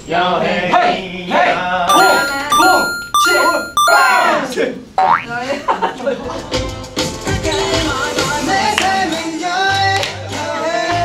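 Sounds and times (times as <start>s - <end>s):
background music with a beat: 1.9s - 4.1s
cartoon rising boing: 5.0s - 5.4s.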